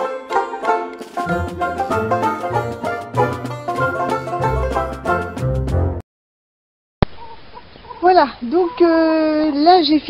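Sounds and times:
hens clucking: 0:00.4 - 0:05.3.

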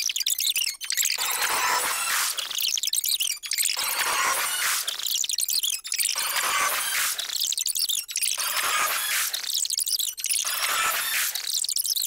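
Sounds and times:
high-pitched electronic chirps and bleeps: 0:00.0 - 0:12.0.

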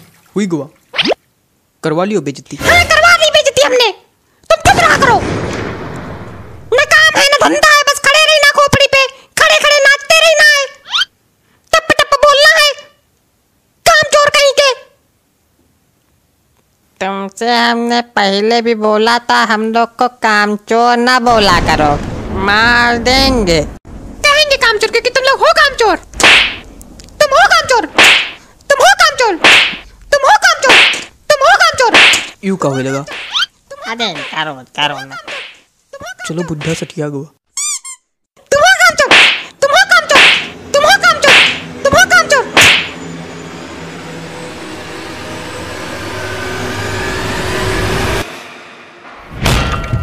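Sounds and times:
whip-like swish: 0:26.2 - 0:26.6, 0:28.0 - 0:28.4, 0:29.4 - 0:29.8, 0:30.6 - 0:31.1, 0:31.9 - 0:32.4, 0:33.1 - 0:33.5, 0:35.3 - 0:35.6, 0:39.0 - 0:39.5, 0:40.1 - 0:40.6, 0:41.2 - 0:41.6, 0:42.5 - 0:43.0
noisy whoosh: 0:40.2 - 0:50.0.

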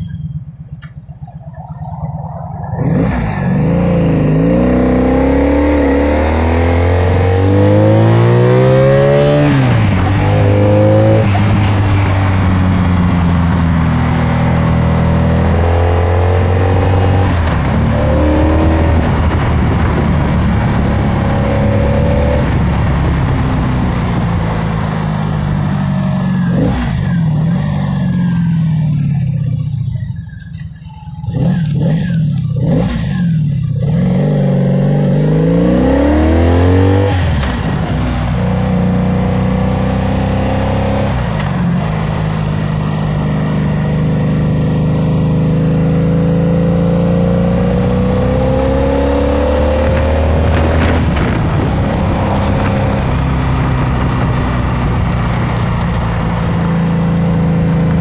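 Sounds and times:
wind noise: 0:00.0 - 0:25.9, 0:46.9 - 0:58.0
motorcycle engine under way: 0:00.0 - 0:58.0.

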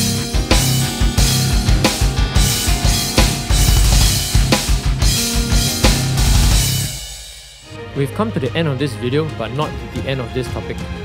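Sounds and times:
electronic drum kit metal groove: 0:00.0 - 0:07.8
heavy metal backing track: 0:00.0 - 0:07.8.

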